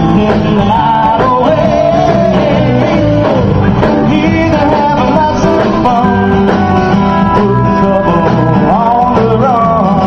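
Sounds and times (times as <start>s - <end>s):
bass guitar: 0.0s - 10.0s
drums: 0.0s - 10.0s
man singing: 0.0s - 10.0s.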